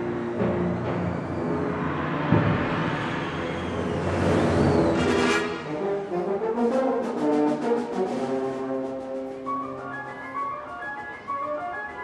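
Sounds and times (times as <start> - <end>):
heavy drum stroke: 0.0 - 5.8
percussion roll: 0.0 - 12.0
loud brass entry: 0.6 - 6.5
wind band playing: 4.2 - 12.0.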